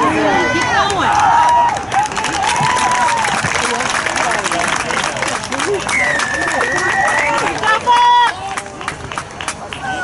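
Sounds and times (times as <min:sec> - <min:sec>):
sideline chatter: 0:00.0 - 0:10.0.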